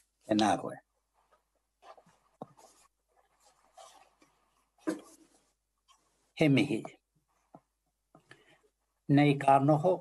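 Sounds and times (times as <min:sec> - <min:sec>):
faint rustling: 0:01.1 - 0:08.8.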